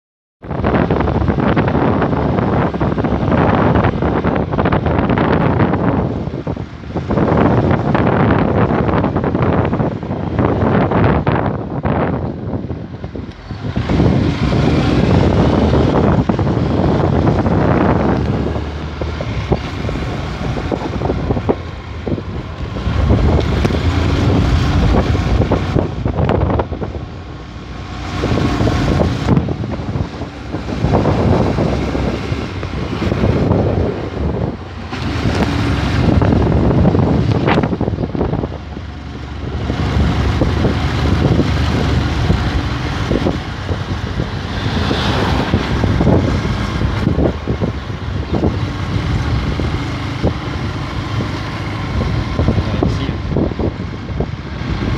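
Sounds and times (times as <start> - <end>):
motorcycle engine at low speed: 0.4 - 54.9
wind rumbling on microphone: 0.4 - 54.9.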